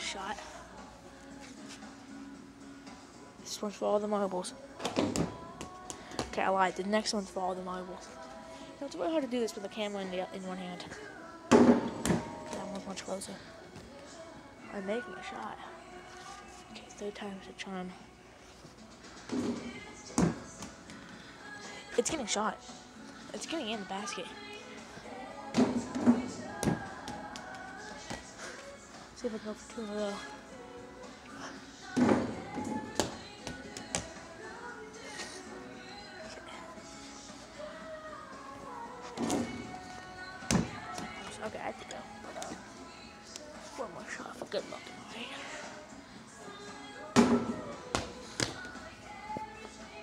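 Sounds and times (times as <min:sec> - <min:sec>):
background music: 0:00.0 - 0:50.0.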